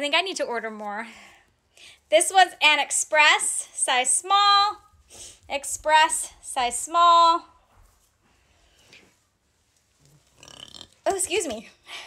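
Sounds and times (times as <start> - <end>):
woman speaking: 0.0 - 1.1, 2.1 - 4.8, 5.5 - 7.5, 11.1 - 11.8.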